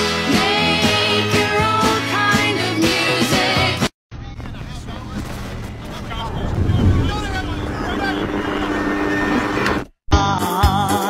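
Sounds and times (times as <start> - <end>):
upbeat disco-funk music: 0.0 - 3.9, 10.1 - 11.0
faint voices: 4.2 - 9.7
car engine rumble: 4.2 - 9.8.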